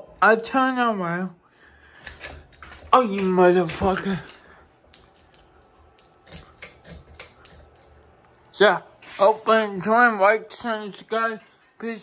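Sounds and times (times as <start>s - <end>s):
ceiling fan clicking: 1.8s - 8.5s.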